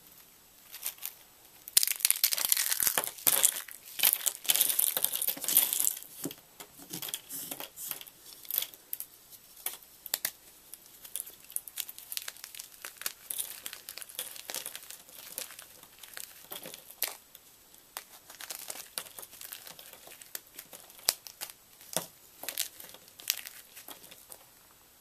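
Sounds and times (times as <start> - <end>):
chalk crackling and crunching: 0.0 - 24.6.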